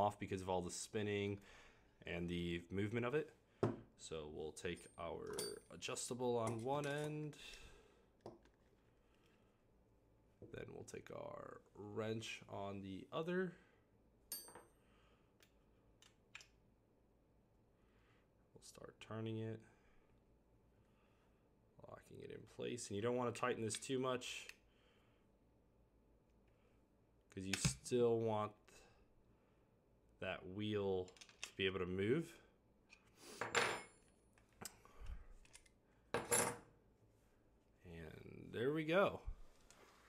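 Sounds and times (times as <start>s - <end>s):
metal tools clinking and scraping: 4.7s - 7.4s.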